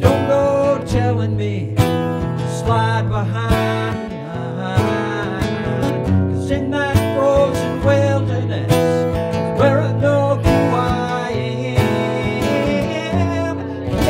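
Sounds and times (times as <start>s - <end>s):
acoustic guitar strumming: 0.0s - 14.0s
man singing: 0.0s - 14.0s.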